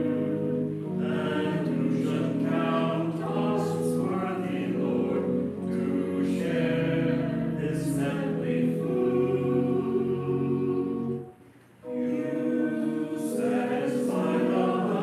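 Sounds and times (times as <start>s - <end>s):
group singing a hymn: 0.0s - 15.0s.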